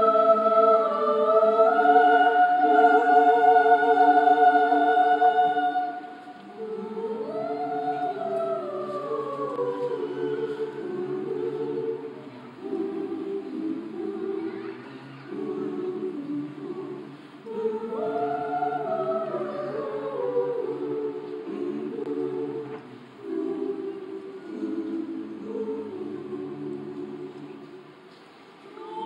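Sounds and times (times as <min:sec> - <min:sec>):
a cappella choir singing: 0:00.0 - 0:29.0.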